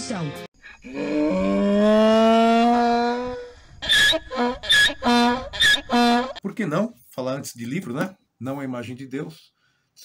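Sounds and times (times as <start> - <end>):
donkey braying: 0.8 - 6.4.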